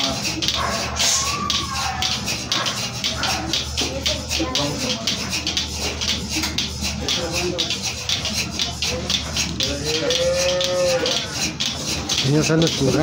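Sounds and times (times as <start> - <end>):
milking machine hum and hissing pulse: 0.0 - 13.0.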